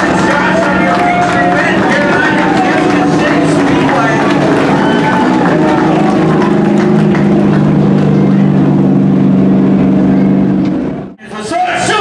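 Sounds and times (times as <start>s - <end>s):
race car engine driving by: 0.0s - 11.2s.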